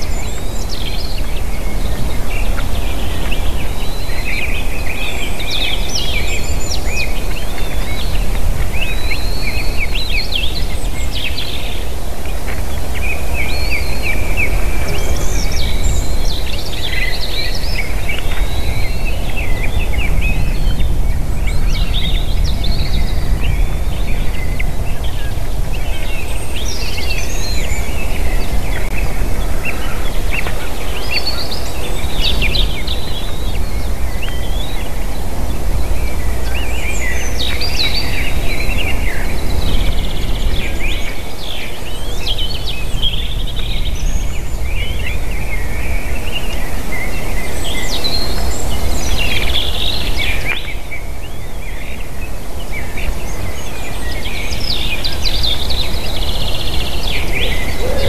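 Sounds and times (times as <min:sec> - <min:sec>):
songbirds chirping and trilling: 0:00.0 - 0:58.0
wind noise on microphone: 0:00.0 - 0:58.0.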